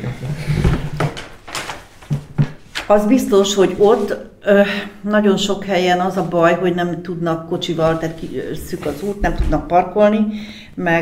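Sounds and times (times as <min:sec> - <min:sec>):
people speaking: 0:02.9 - 0:11.0
woman speaking: 0:02.9 - 0:11.0.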